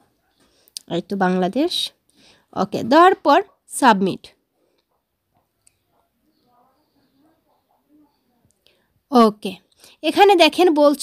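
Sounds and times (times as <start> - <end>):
faint murmur of voice: 5.8 - 8.6.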